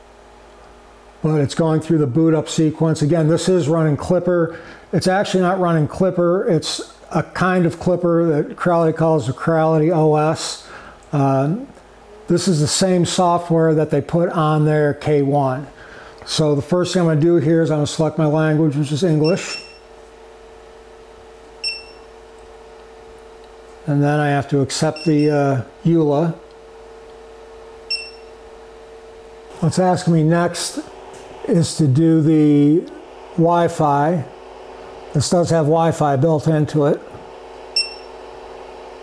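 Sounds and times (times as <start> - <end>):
power supply fan humming: 0.0 - 39.0
touchscreen beep: 19.2 - 19.8, 21.6 - 22.0, 27.9 - 28.3, 37.8 - 38.1.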